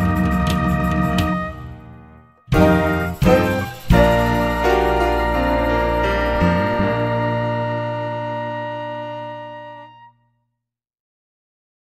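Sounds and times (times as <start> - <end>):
jazz band chord ringing: 2.5 - 9.8.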